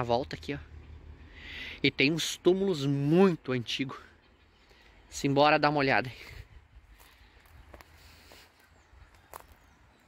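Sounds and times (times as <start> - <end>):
footsteps on tiled paving: 6.8 - 10.0.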